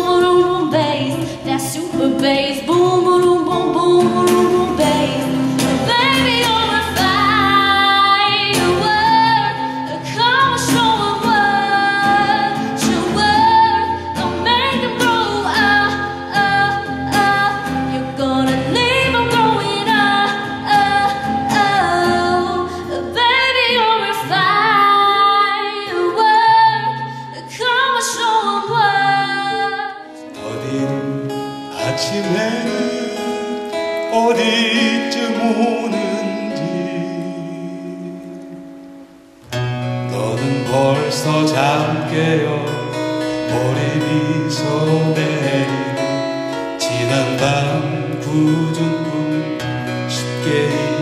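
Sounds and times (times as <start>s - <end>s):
woman singing into microphone: 0.0s - 38.4s, 40.2s - 51.0s
acoustic guitar: 0.0s - 51.0s.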